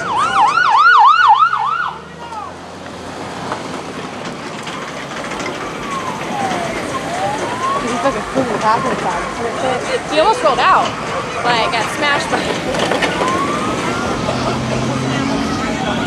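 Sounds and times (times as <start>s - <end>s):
ambulance siren: 0.0s - 2.5s, 4.5s - 16.0s.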